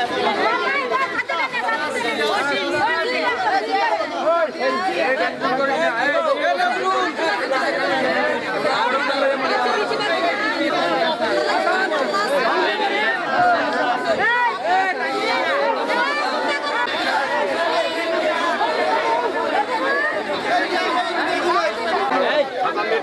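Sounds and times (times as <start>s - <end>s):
crowd babble: 0.0s - 23.0s.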